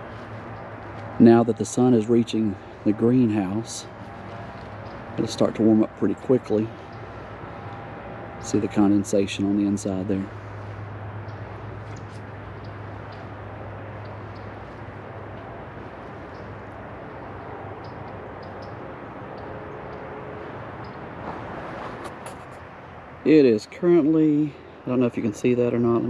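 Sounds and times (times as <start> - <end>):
outdoor background rumble: 0.0 - 26.0
footsteps on grass: 2.6 - 5.5, 10.2 - 16.9, 21.1 - 22.6.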